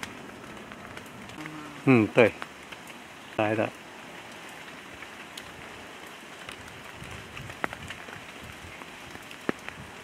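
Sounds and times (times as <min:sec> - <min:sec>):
light rain hiss: 0:00.0 - 0:10.0
person humming mm: 0:01.4 - 0:02.0.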